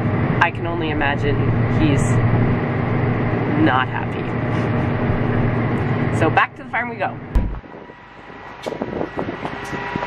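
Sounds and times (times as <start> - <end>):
mechanical hum with high whine: 0.0 - 10.0
sudden thump: 7.3 - 7.7
wind noise: 7.3 - 10.0.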